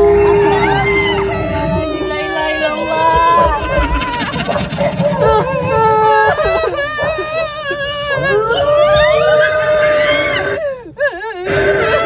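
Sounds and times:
young women crying: 0.0 - 12.0.

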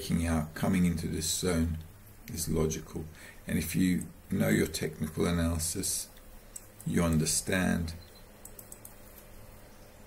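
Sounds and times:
low electrical hum: 0.0 - 10.0
computer control clicks: 8.0 - 9.3.

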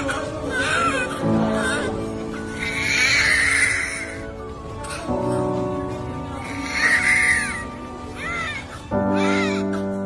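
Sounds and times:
newborn baby crying: 0.0 - 5.1, 6.4 - 9.8
background music chord: 0.0 - 10.0.

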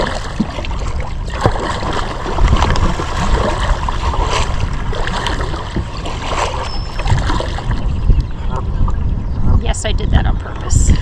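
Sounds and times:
goose wings splashing water: 0.0 - 7.8
wind rumble on microphone: 0.0 - 11.0.

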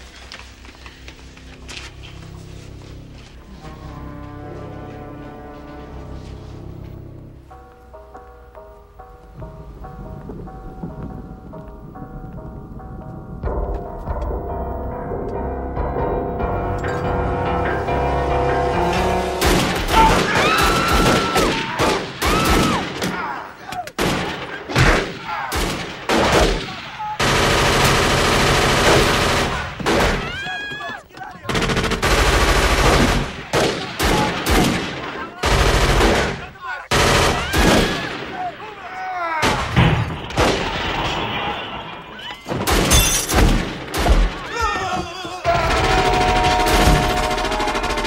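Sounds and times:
gunshots: 19.4 - 23.3, 24.0 - 30.3, 31.4 - 38.6, 39.4 - 44.5
person yelling: 38.4 - 39.5, 44.4 - 48.0.

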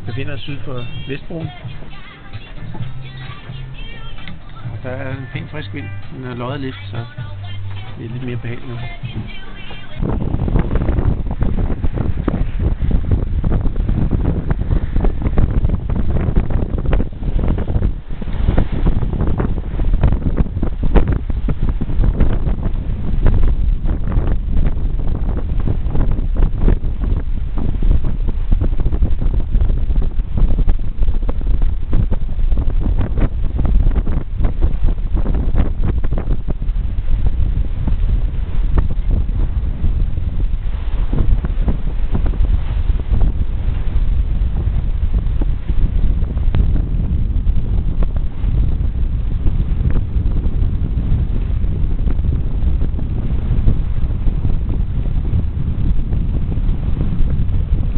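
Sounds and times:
gusty wind buffeting microphone: 0.0 - 57.9
water rushing past hull: 0.0 - 57.9.

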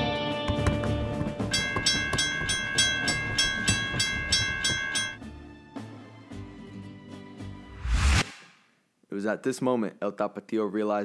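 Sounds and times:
even clattering rhythm: 1.4 - 5.2.

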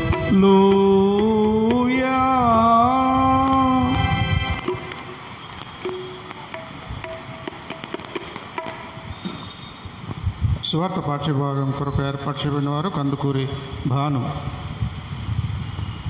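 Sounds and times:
keyboard and tabla: 0.0 - 11.0
man singing: 0.2 - 4.2
small knocks: 4.6 - 9.4.

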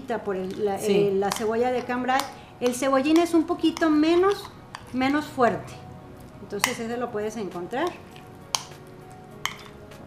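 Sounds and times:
spoon stirring cheese filling: 7.9 - 10.0
spoon clinking against glass: 9.4 - 9.8.

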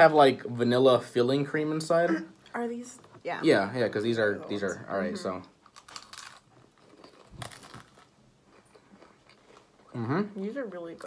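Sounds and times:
faint chewing crackles: 5.4 - 11.0
crunchy bite into pastry: 5.7 - 8.1.

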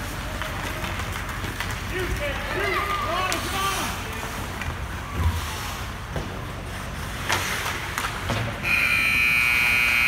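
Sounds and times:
scoreboard buzzer: 8.6 - 10.0.

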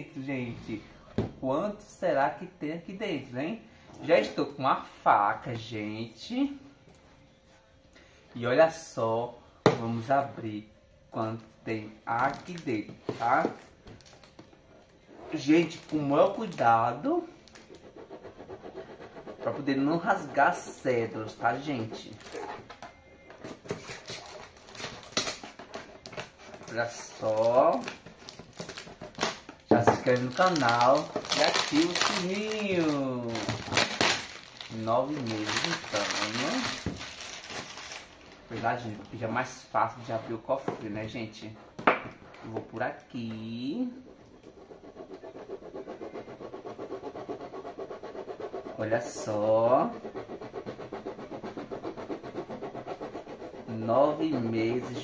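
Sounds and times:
knife sawing through plastic: 44.6 - 55.0.

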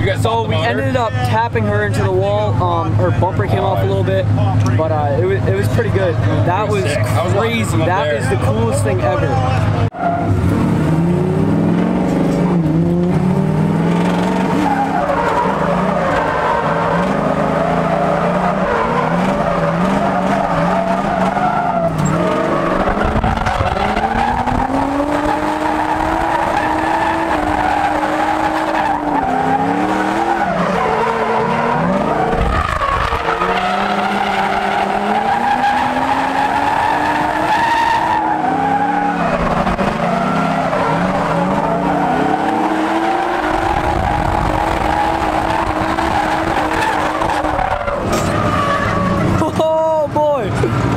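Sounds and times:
car engine revving: 0.0 - 49.6
tyres squealing: 14.3 - 49.6.

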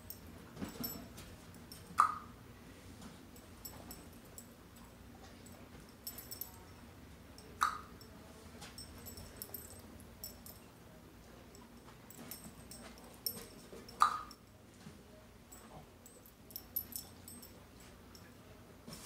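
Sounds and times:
dog collar tag jingling: 0.0 - 2.1, 3.3 - 10.8, 11.5 - 14.6, 15.5 - 18.3.

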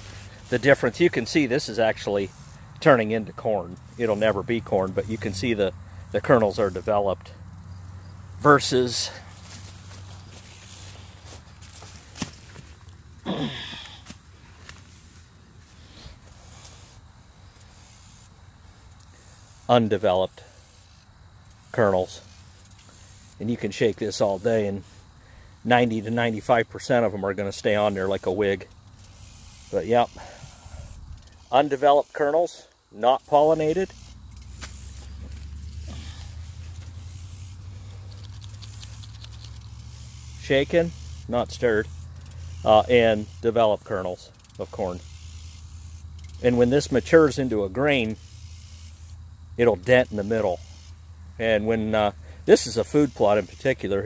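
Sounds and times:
corn leaves rustling: 0.0 - 2.1, 8.5 - 17.6, 33.5 - 39.8.

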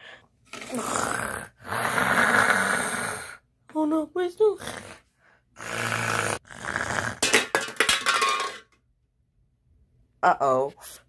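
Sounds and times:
small hard objects clattering on desk: 7.2 - 8.8.

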